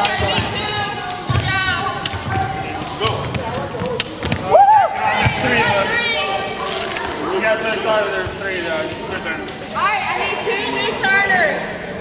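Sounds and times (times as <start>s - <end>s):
jump rope slapping wooden floor: 0.0s - 4.5s.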